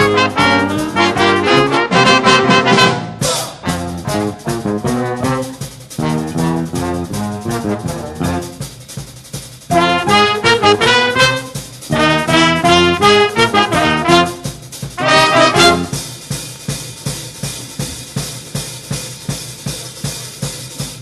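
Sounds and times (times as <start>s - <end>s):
electric bass: 0.0s - 8.6s, 9.7s - 14.4s
saxophones: 0.0s - 8.7s, 9.7s - 16.1s
trumpets and trombones: 0.0s - 8.8s, 9.7s - 16.2s
drum kit: 0.0s - 21.0s.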